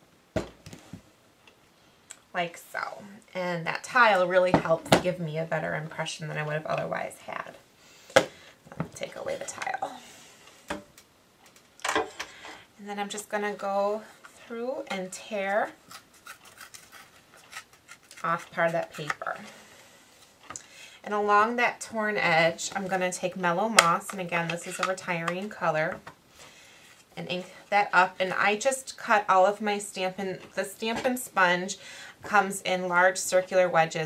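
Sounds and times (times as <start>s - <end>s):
paper tearing: 15.9s - 18.5s.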